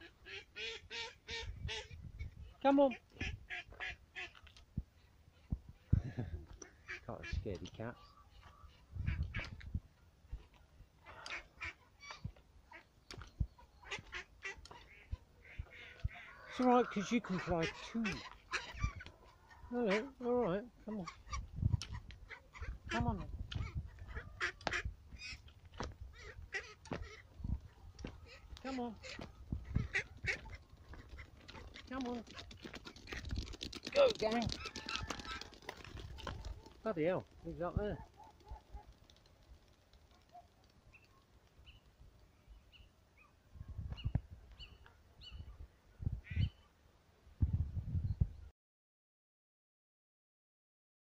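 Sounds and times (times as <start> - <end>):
young ducks calling: 0.0 - 4.4, 11.0 - 38.9, 46.2 - 46.6.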